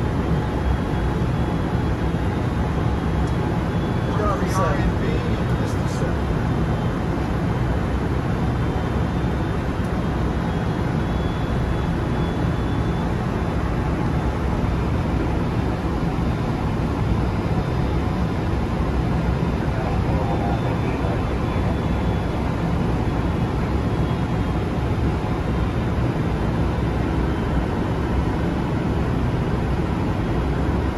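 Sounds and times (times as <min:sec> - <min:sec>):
air-conditioning rush in cockpit: 0:00.0 - 0:30.9.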